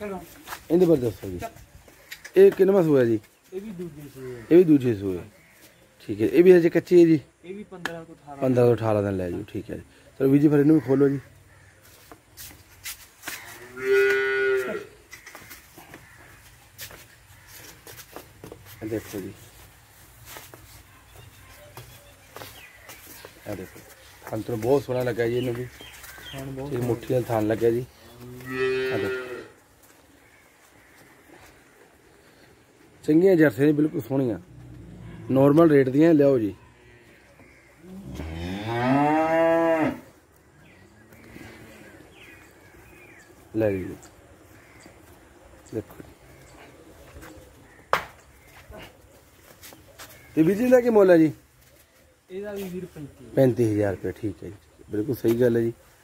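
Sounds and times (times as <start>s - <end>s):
cow mooing: 13.8s - 14.9s, 28.2s - 29.5s, 37.9s - 40.1s.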